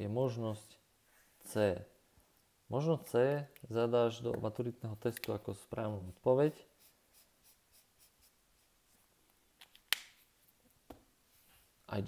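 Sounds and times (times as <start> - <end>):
highlighter scratching on paper: 5.8 - 9.1.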